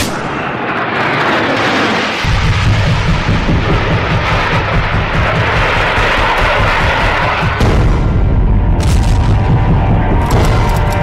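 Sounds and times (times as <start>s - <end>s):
booming and rumbling effects: 0.0s - 11.0s
dramatic news background music: 2.3s - 11.0s.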